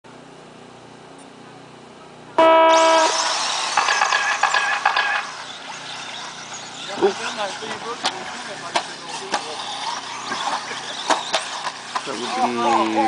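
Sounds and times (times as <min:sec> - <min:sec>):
electronic start beep: 0:02.4 - 0:03.3
rc car motors whining: 0:02.4 - 0:13.0.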